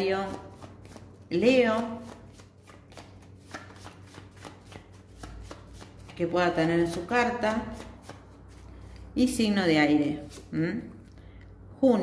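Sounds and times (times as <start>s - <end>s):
cards being shuffled: 0.2s - 9.1s, 10.2s - 10.5s.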